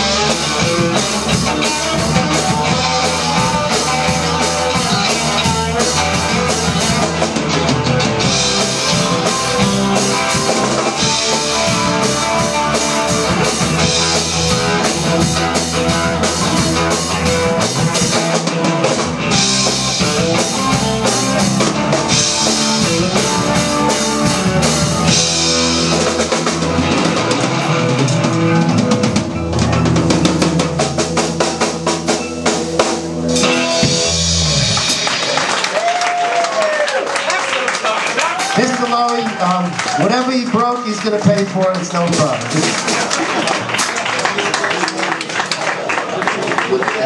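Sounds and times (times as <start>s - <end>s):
drum kit played hard: 0.0s - 44.9s
rock band playing: 0.0s - 47.0s.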